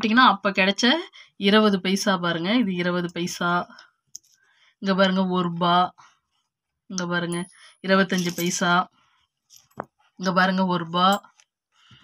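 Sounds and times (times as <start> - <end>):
woman speaking: 0.0 - 3.8, 4.8 - 6.0, 6.9 - 8.9, 10.2 - 11.2.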